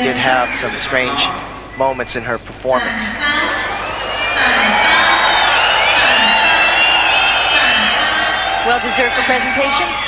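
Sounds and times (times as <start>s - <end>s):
crowd shouting and whistling: 0.0s - 2.2s, 3.2s - 10.0s.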